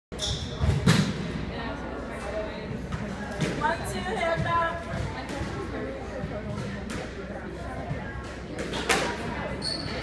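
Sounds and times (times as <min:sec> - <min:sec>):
high squeak: 0:09.6 - 0:10.0.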